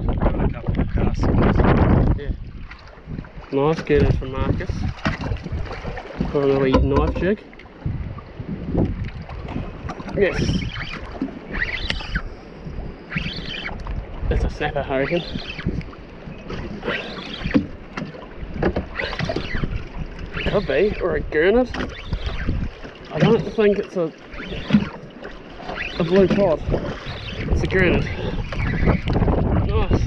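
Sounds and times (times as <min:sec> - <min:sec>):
water around a boat: 0:00.0 - 0:30.0
wind rumbling on microphone: 0:00.0 - 0:30.0
voices: 0:10.1 - 0:10.8, 0:14.3 - 0:15.6, 0:20.4 - 0:21.8, 0:23.1 - 0:24.8, 0:25.8 - 0:26.7, 0:27.5 - 0:28.4
high wavering call: 0:13.0 - 0:13.8.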